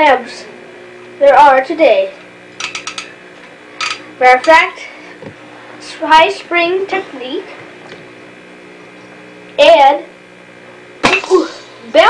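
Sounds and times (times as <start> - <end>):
lamp parts clicking and rattling: 2.6 - 3.2, 3.8 - 4.6.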